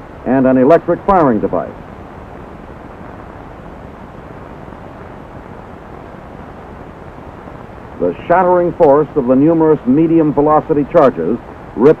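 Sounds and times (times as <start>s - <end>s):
film soundtrack hiss and rumble: 0.0s - 12.0s.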